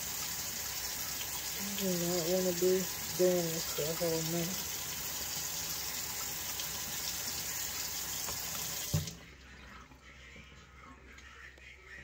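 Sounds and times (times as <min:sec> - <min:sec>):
faucet running into sink: 0:00.0 - 0:09.2.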